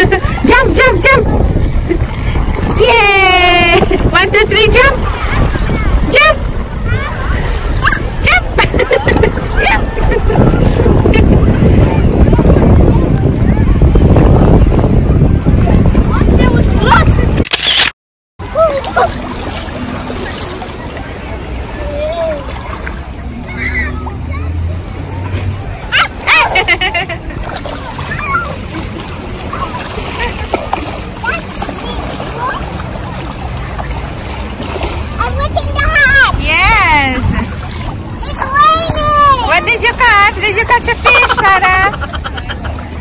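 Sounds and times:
faint children's voices: 0.0 - 17.4, 18.4 - 43.0
wind buffeting microphone: 0.0 - 17.4, 25.2 - 42.0.

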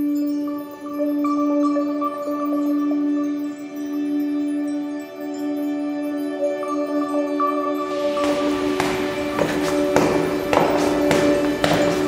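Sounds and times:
background music with drone: 0.0 - 12.0
heeled boots on stone stairs: 8.0 - 12.0.

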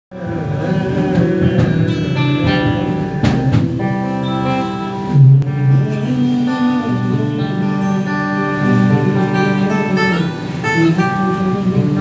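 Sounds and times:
acoustic guitar playing: 0.1 - 12.0
long held melodic notes: 0.2 - 12.0.

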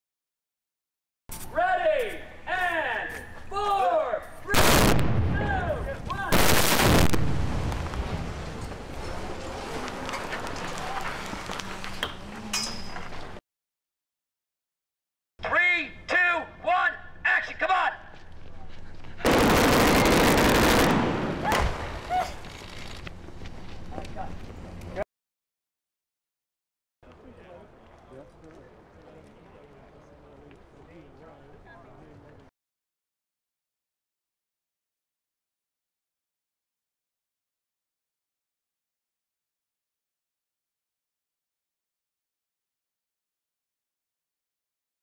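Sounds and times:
sharp crack: 4.5 - 8.2
explosion blasts with rumble: 4.5 - 8.7, 19.2 - 22.1.

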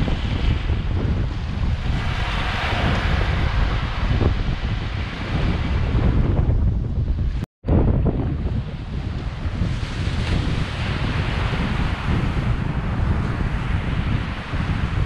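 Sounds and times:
surf breaking on beach: 0.0 - 6.6, 7.7 - 15.0
wind buffeting microphone: 0.0 - 15.0.

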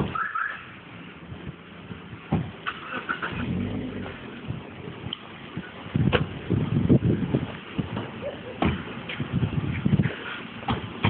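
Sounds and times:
car engine running: 0.9 - 8.2.

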